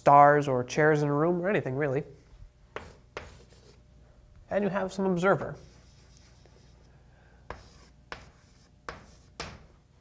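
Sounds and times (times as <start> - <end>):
chalk tapping on blackboard: 2.7 - 3.8, 7.5 - 9.7
chalk scratching: 2.8 - 3.8, 5.6 - 6.9, 7.5 - 9.6.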